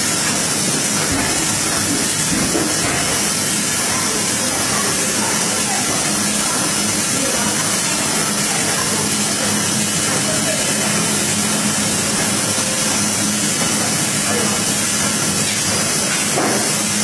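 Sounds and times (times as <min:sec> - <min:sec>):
folding machine running: 0:00.0 - 0:17.0.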